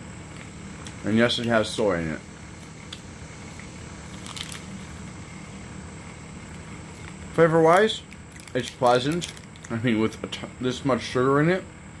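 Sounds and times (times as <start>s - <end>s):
low room hum: 0.0s - 12.0s
plastic wrapper crackles: 4.1s - 4.7s, 7.0s - 9.8s.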